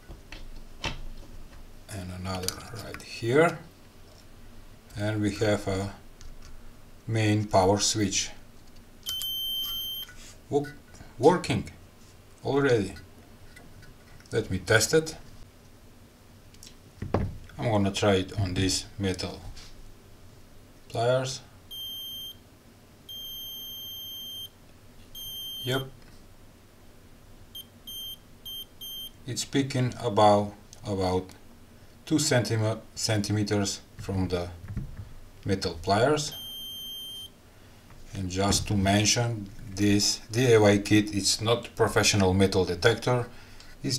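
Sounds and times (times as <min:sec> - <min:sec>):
high-pitched buzzer beep: 0:09.1 - 0:10.1, 0:21.7 - 0:22.4, 0:23.1 - 0:24.5, 0:25.2 - 0:25.9, 0:27.6 - 0:29.2, 0:36.3 - 0:37.3.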